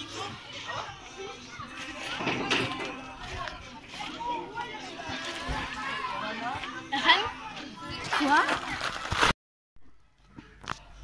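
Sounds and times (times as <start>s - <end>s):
children's voices outdoors: 0.0s - 9.3s.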